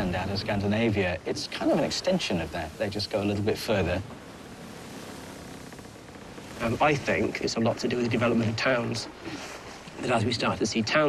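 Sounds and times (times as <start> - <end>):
wind and water rushing: 0.0 - 11.0.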